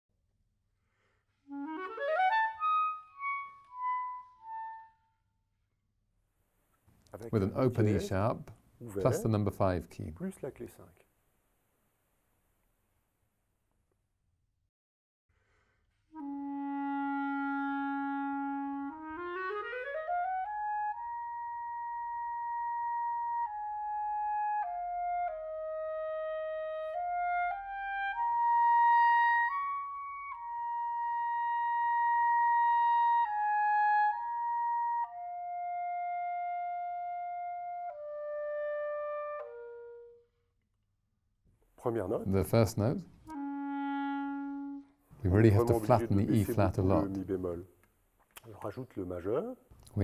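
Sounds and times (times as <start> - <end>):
solo clarinet playing: 1.4 - 5.2, 16.1 - 40.3, 43.2 - 47.2.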